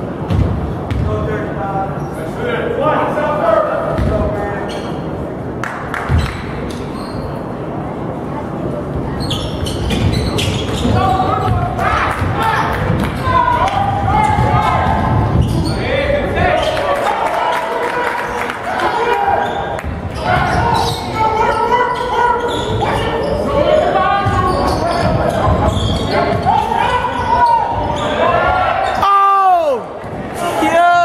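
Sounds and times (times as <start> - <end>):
basketball bouncing on wooden floor: 4.0 - 4.2
short sharp squeaks: 6.2 - 7.4, 9.2 - 11.2, 15.4 - 15.8, 24.4 - 28.2
voices calling out: 9.1 - 31.0.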